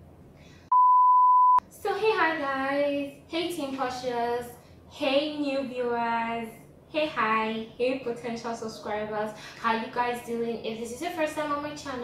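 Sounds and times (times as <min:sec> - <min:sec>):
electronic beep: 0:00.7 - 0:01.6
woman speaking: 0:01.6 - 0:12.0.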